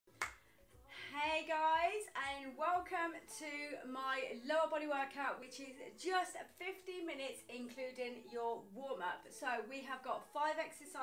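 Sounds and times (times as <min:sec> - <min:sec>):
hand clap: 0:00.1 - 0:00.5
background music with low beat: 0:00.1 - 0:11.0.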